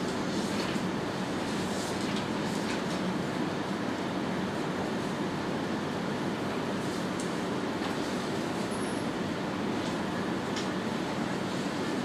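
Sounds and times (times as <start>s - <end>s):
low rumbling room noise: 0.0s - 12.0s.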